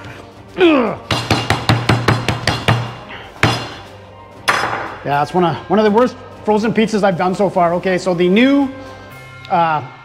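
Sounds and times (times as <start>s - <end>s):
meat mallet pounding: 1.1s - 3.8s.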